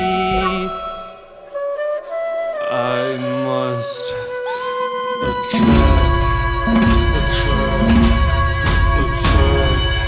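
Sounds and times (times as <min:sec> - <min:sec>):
flute sliding held notes: 0:00.0 - 0:10.0
low held note: 0:02.8 - 0:10.0.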